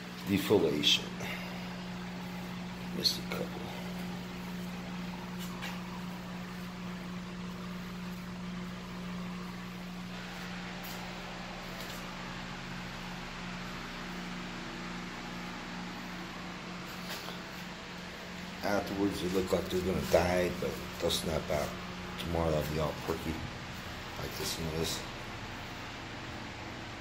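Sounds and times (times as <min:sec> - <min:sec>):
low machine hum: 0:00.0 - 0:27.0.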